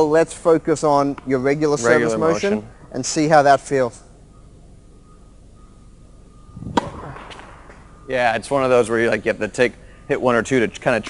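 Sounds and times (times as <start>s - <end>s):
racket swing rush: 6.6s - 7.7s
tennis racket hitting ball: 6.7s - 7.8s.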